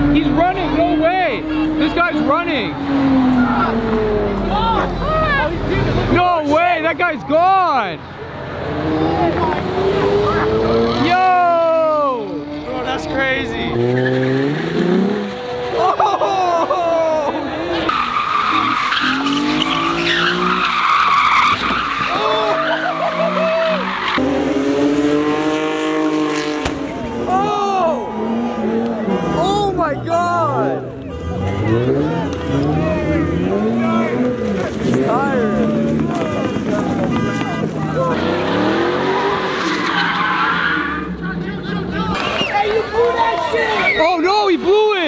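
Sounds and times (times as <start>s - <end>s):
car engine revving: 0.0s - 6.4s, 8.0s - 16.5s, 17.4s - 44.8s
tyres screeching: 17.2s - 24.6s, 30.5s - 44.3s.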